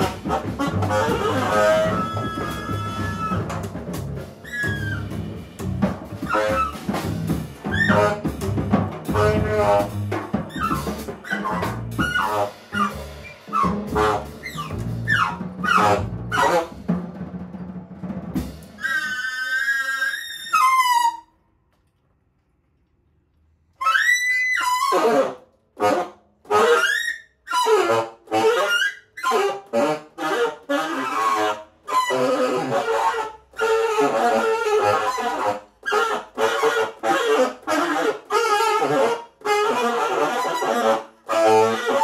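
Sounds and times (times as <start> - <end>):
tenor saxophone improvising: 0.0 - 3.8, 4.4 - 16.8, 23.8 - 42.0.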